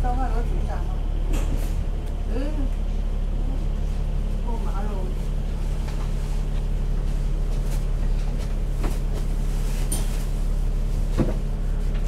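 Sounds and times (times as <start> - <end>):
faint passenger voices: 0.0 - 5.4
bus diesel engine idling: 0.0 - 12.0.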